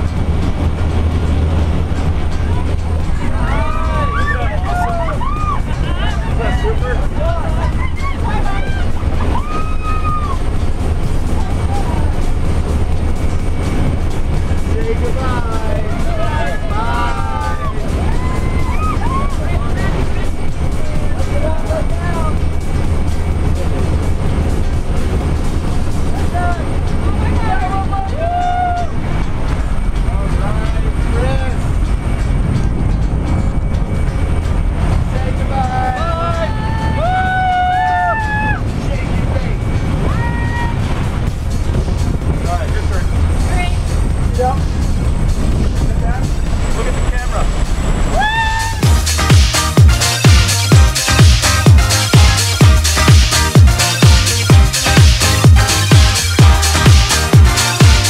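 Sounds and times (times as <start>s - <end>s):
small plane engine roar: 0.0s - 28.1s.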